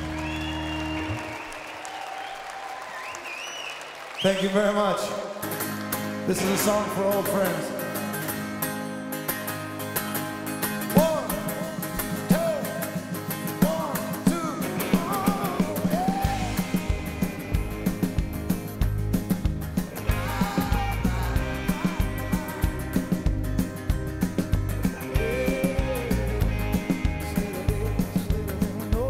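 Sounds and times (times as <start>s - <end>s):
bass guitar: 0.0s - 1.4s, 6.1s - 29.0s
guitar notes: 5.3s - 29.0s
steady drum beat: 13.4s - 29.0s.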